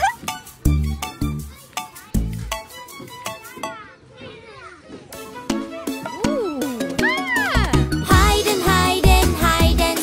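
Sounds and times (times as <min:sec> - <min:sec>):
children's song backing music: 0:00.0 - 0:04.1, 0:05.0 - 0:10.0
cartoon children giggling and calling: 0:06.0 - 0:08.1.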